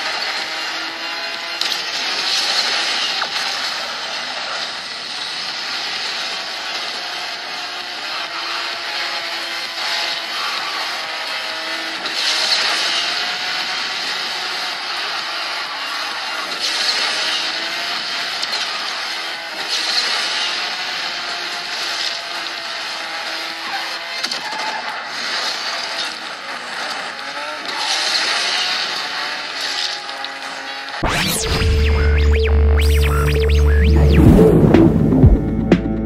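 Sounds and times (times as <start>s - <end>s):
video game car engine revving: 0.0s - 36.0s
rushing speed noise: 31.0s - 36.0s.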